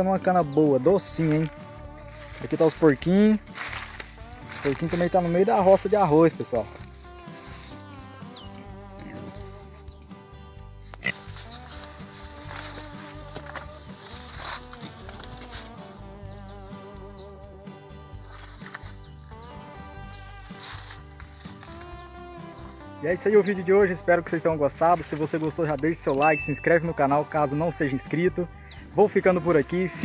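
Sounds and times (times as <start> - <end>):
quiet background music: 0.0 - 30.0
pigs grunting: 9.0 - 9.5, 11.0 - 11.5.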